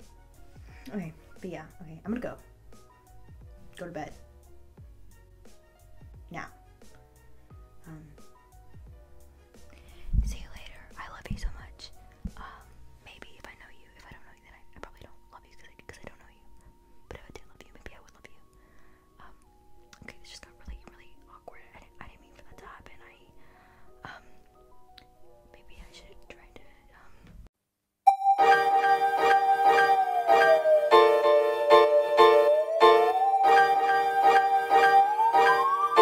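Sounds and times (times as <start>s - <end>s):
slow ambient music: 0.0s - 27.1s, 28.1s - 36.0s
woman whispering: 7.8s - 8.2s, 10.2s - 18.5s, 19.2s - 19.4s, 20.0s - 23.4s, 25.5s - 27.2s.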